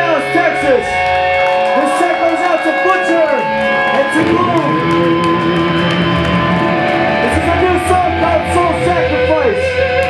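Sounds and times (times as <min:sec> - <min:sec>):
electric guitars holding loud notes: 0:00.0 - 0:10.0.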